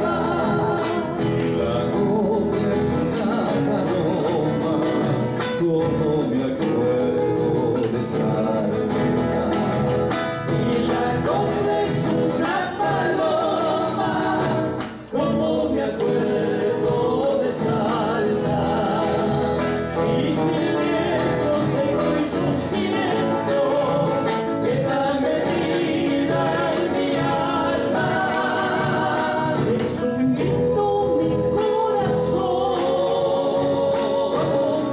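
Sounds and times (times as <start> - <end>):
men singing in harmony: 0.0 - 34.9
strummed acoustic guitars: 0.0 - 34.9.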